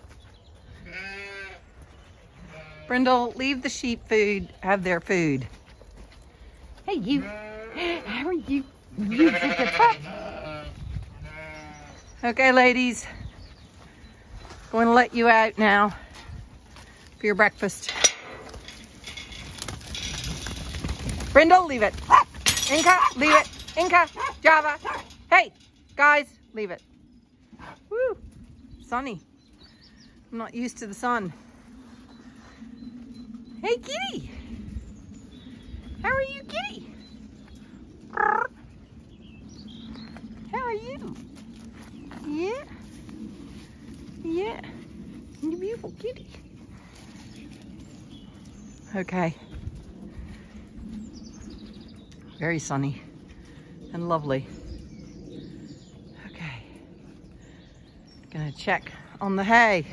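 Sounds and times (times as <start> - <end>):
sheep bleating: 0.9 - 1.6, 2.4 - 2.9, 9.0 - 12.0.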